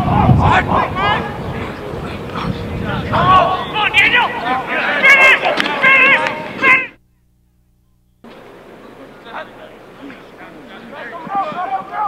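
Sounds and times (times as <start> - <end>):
faint outdoor background noise: 0.0 - 12.0
high-pitched shouting voices: 3.1 - 7.0.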